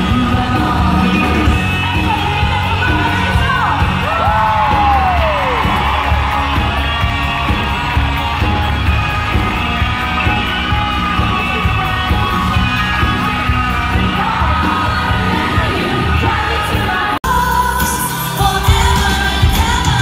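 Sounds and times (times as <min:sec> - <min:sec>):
crowd whooping and cheering: 0:00.0 - 0:20.0
live pop-rock band: 0:00.0 - 0:20.0.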